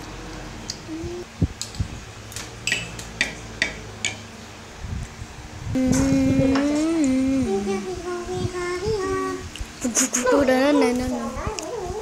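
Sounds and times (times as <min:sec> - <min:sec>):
person humming: 0:00.8 - 0:01.3, 0:05.7 - 0:08.3, 0:09.8 - 0:11.0.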